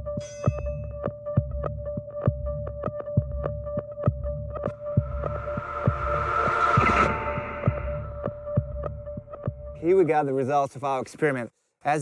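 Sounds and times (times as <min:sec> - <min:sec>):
pulsing heartbeat-like beat: 0:04.1 - 0:09.8
rising swell: 0:04.6 - 0:09.4
held drone: 0:04.7 - 0:09.2.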